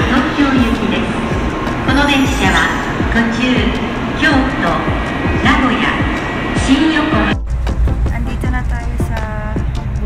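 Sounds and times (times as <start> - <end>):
railway platform ambience: 0.0 - 10.0
background music with melody: 4.8 - 10.0.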